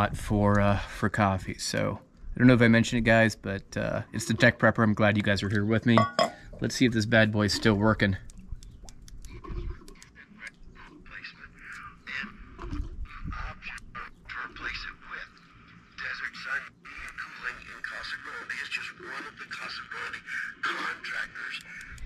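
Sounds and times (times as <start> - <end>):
radio speaker sputtering crackles: 7.2 - 22.0.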